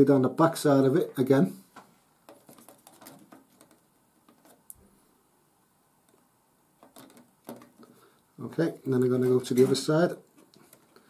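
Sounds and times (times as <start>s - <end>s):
faint clicks and rustles of handling: 1.6s - 5.2s, 6.0s - 11.0s.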